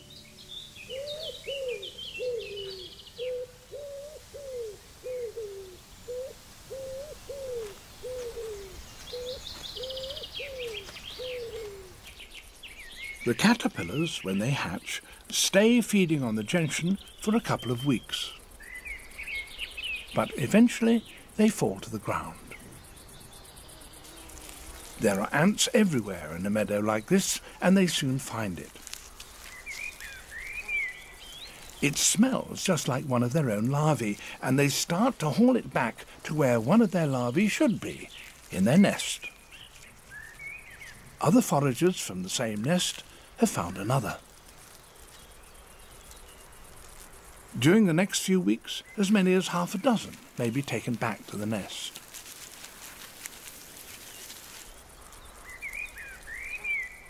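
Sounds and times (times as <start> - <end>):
bird trill: 0.0 - 14.8
small birds chirping: 0.0 - 57.0
bird cooing: 0.9 - 12.0.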